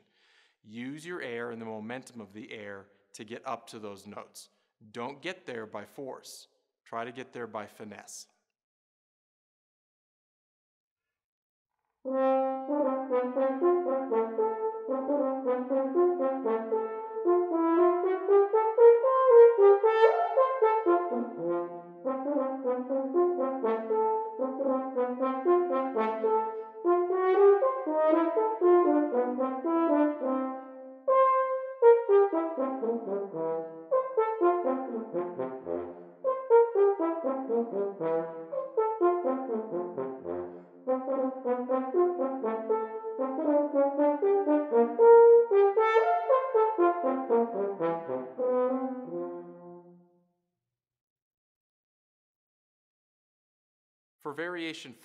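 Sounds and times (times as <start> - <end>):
french horn playing fast notes: 12.1 - 50.0.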